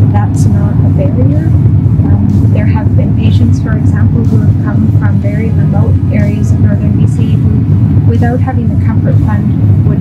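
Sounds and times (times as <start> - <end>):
steady low rumble: 0.0 - 10.0
woman speaking: 0.0 - 10.0.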